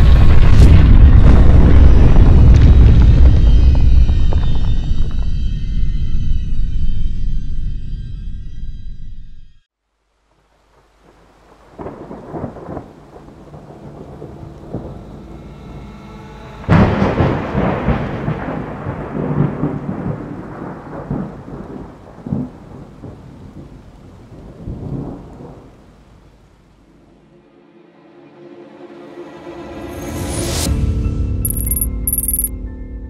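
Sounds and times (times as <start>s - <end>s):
loud thunderclap: 0.0s - 3.8s, 11.8s - 14.9s, 16.7s - 23.7s
rain: 9.8s - 27.5s
thunder rumbling: 11.0s - 15.0s, 16.7s - 25.9s.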